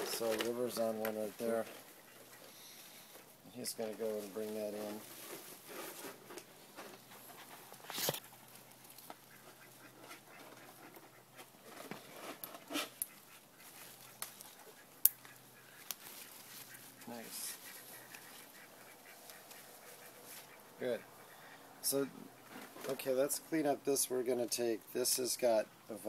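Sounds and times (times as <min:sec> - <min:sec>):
rustling of foliage: 0:00.0 - 0:26.0.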